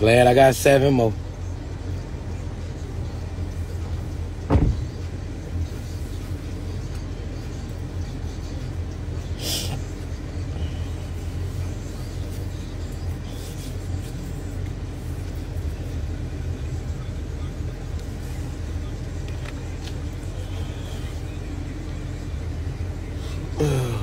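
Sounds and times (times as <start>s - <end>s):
running vehicle low rumble: 0.0s - 24.0s.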